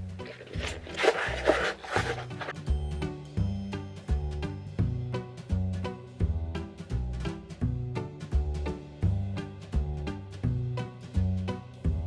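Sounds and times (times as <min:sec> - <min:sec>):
background music: 0:00.0 - 0:12.0
cardboard box being folded: 0:00.2 - 0:02.6.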